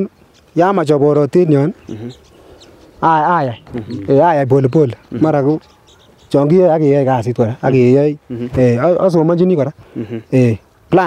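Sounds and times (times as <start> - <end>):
man talking: 0.0 - 2.2, 3.0 - 5.6, 6.3 - 11.0.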